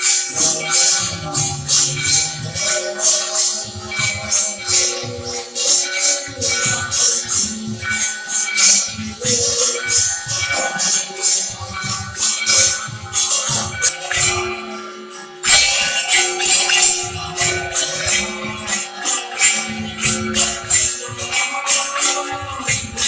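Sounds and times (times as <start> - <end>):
metal jingling and clashing: 0.0 - 23.0.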